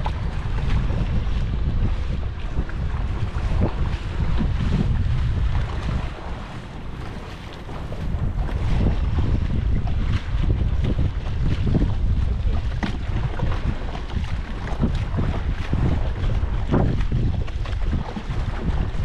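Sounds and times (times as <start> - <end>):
short splashes: 0.0 - 19.0
water splashing and sloshing: 0.0 - 19.0
wind buffeting microphone: 0.0 - 19.0.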